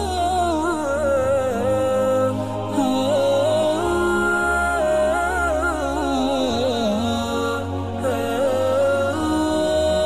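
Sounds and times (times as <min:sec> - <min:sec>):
steady low drone: 0:00.0 - 0:10.0.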